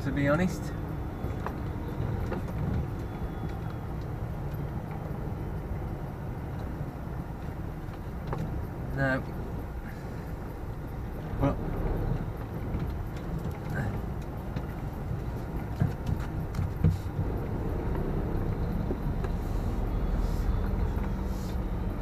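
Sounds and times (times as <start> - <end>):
diesel lorry engine running: 0.0 - 22.0.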